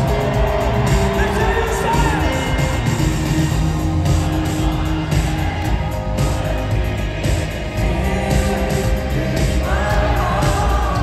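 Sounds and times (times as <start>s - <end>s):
drums: 0.0s - 11.0s
heavy bass: 0.0s - 11.0s
live synth-pop band playing: 0.0s - 11.0s
synthesizers: 0.0s - 11.0s.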